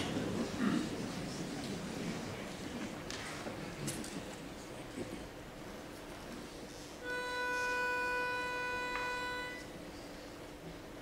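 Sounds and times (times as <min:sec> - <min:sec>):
pitch pipe steady note: 0:07.0 - 0:09.9.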